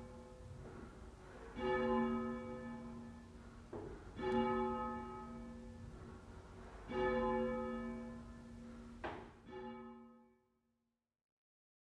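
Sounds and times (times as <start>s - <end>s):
church bell tolling: 1.4s - 10.4s.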